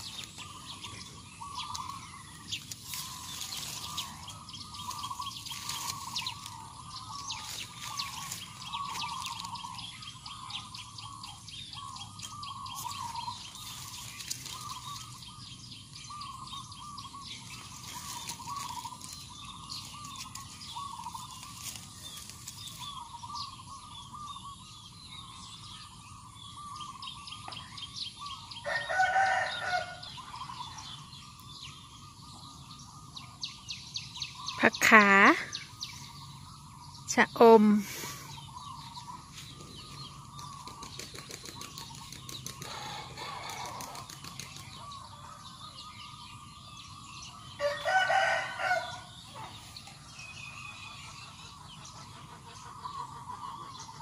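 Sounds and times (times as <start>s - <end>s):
birds chirping: 0.0s - 54.0s
rooster crowing: 28.6s - 30.0s, 47.6s - 49.2s.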